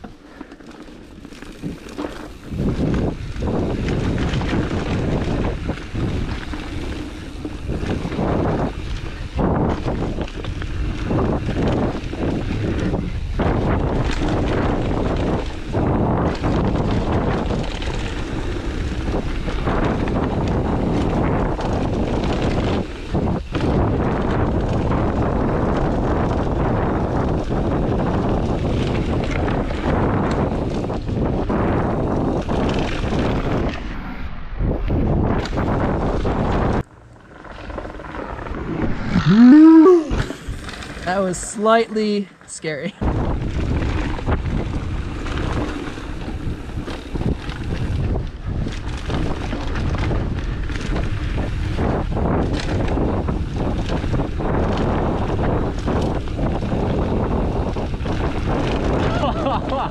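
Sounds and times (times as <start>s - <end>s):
bike tyres rattling on dirt trail: 0.0s - 39.6s, 40.2s - 41.4s, 43.0s - 59.9s
wind on microphone: 1.1s - 59.9s
person crying out: 38.8s - 40.4s, 59.1s - 59.6s.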